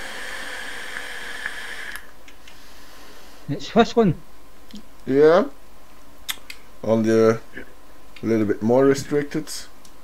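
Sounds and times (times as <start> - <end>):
air hissing through vape: 0.0 - 2.1.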